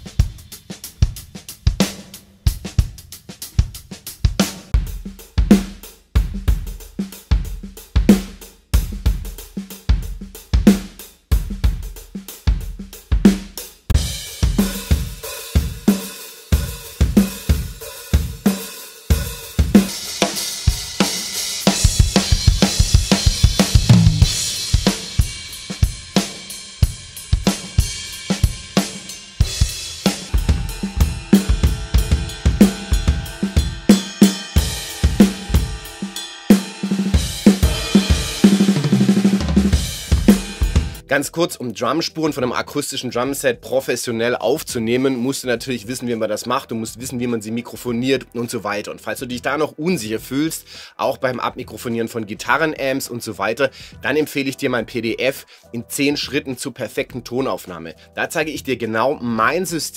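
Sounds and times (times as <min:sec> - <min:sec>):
acoustic drum set beat: 0:00.0 - 0:41.1
electronic drum kit beat: 0:00.0 - 0:41.1.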